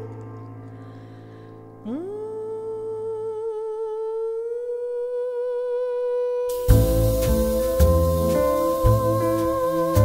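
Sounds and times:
woman singing a high note: 1.8 - 10.0
low drone: 6.5 - 10.0.

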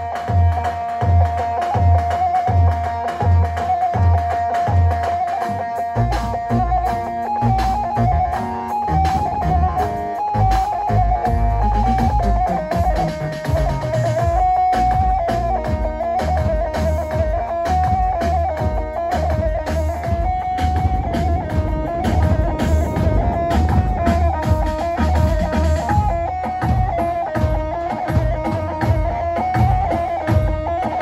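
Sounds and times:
drum and bass beat: 0.0 - 31.0
electric saz melody: 0.0 - 31.0.

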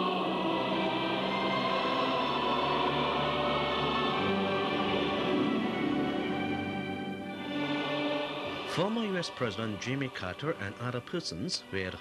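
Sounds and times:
choir singing held notes: 0.0 - 11.2
orchestra: 0.0 - 12.0.

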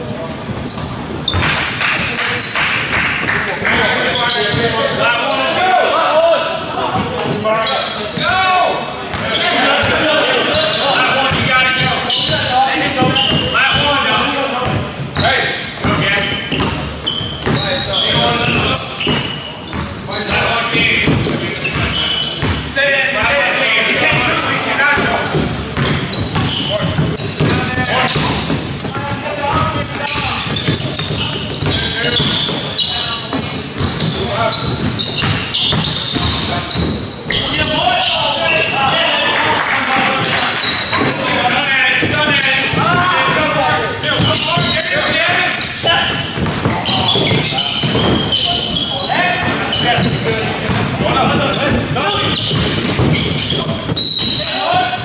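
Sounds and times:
basketball bouncing on hardwood: 11.2 - 20.0, 21.0 - 23.3, 25.0 - 32.6, 33.3 - 37.1, 46.1 - 54.4.

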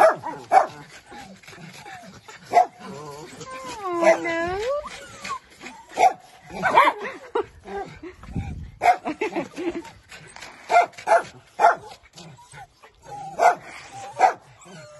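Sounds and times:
dogs barking and yipping: 0.0 - 14.9.

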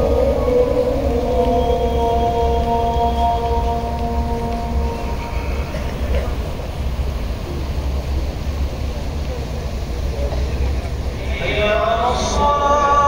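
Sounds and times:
man chanting over loudspeakers: 0.0 - 6.5, 11.1 - 13.0.

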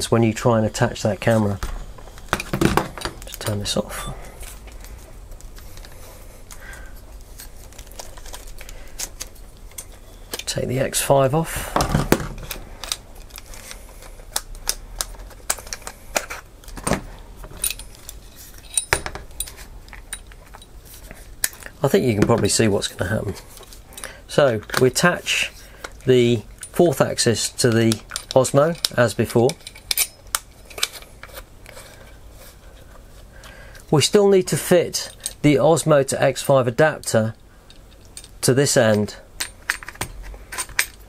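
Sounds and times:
plastic parts clicking: 11.8 - 20.6.

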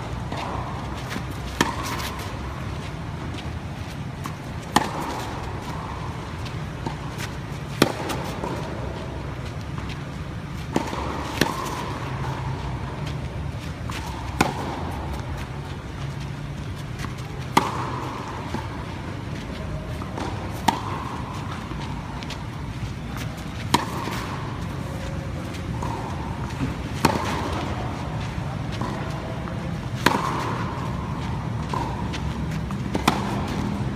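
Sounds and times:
steady low hum: 0.0 - 33.9
tennis racket hitting ball: 0.0 - 33.9.

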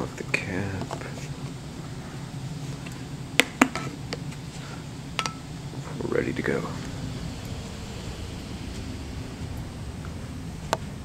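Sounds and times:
low room hum: 0.0 - 11.0.

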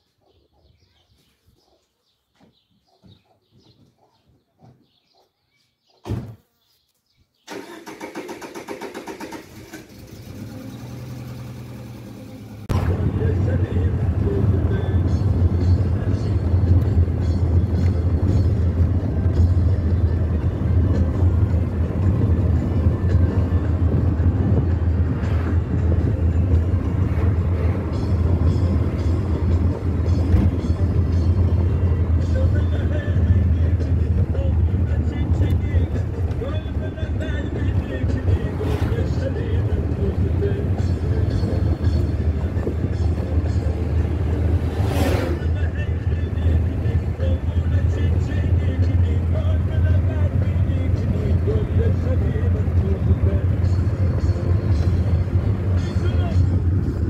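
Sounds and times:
car engine starting: 7.5 - 57.0
engine and road noise in cabin: 7.5 - 57.0.

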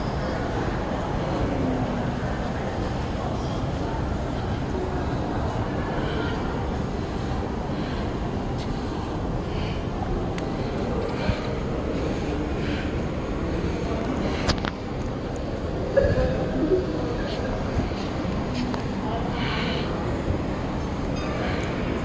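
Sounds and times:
faint distant voices: 0.0 - 22.0.

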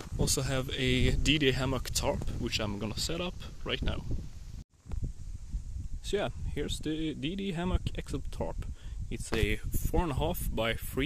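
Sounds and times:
low wind rumble on microphone: 0.0 - 11.0.

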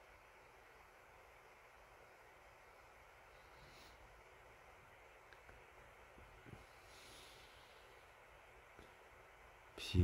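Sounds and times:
faint background hiss: 0.0 - 10.0.

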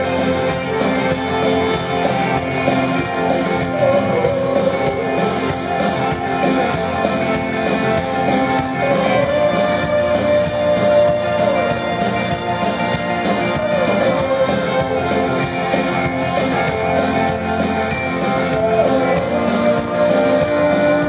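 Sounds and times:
person singing: 0.0 - 17.4, 18.1 - 21.0
bass guitar: 0.0 - 21.0
drum beat: 0.0 - 21.0
electric guitar: 0.0 - 21.0.

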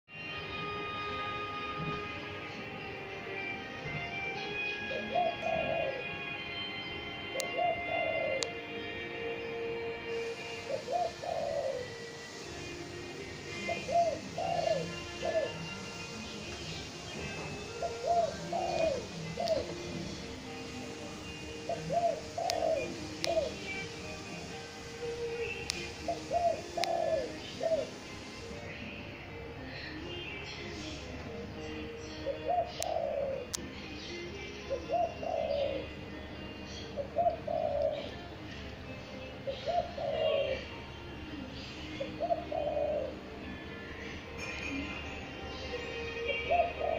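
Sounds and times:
dove cooing: 4.8 - 6.2, 7.3 - 8.6, 10.2 - 12.5, 13.2 - 20.2, 21.6 - 28.1, 32.2 - 33.6, 34.7 - 36.0, 36.7 - 38.2, 39.4 - 40.8, 42.0 - 43.3, 46.2 - 46.9.

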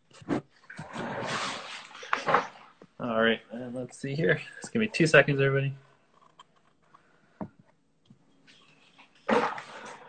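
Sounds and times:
rubbing against microphone: 0.0 - 2.4.

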